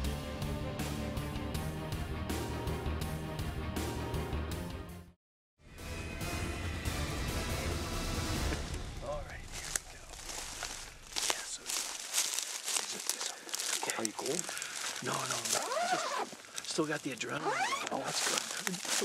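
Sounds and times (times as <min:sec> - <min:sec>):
people's voices: 0:09.0 - 0:19.0
footsteps through dry grass: 0:09.2 - 0:19.0.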